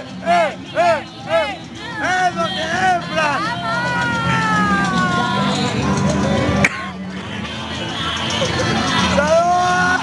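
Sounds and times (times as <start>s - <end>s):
background music: 0.0s - 10.0s
crowd chatter: 0.0s - 10.0s.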